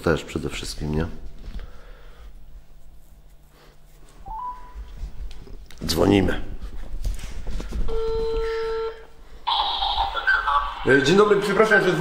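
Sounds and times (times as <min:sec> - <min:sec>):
telephone ringback tone: 0:07.9 - 0:10.0
tinny voice on phone: 0:09.5 - 0:11.0.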